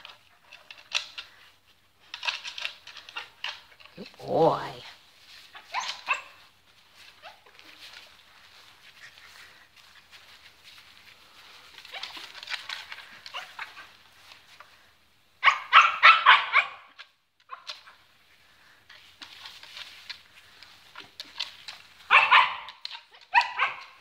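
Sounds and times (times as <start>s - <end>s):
rustling in straw: 3.1s - 15.3s, 17.8s - 24.0s
puppy yipping: 5.5s - 6.4s, 15.4s - 16.9s, 22.1s - 24.0s.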